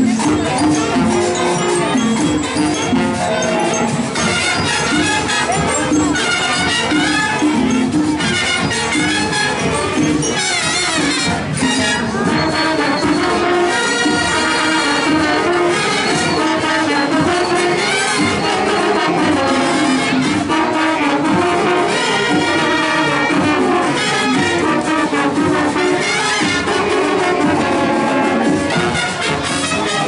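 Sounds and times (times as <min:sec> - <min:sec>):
brass melody: 0:00.0 - 0:30.0
marching percussion: 0:00.0 - 0:30.0.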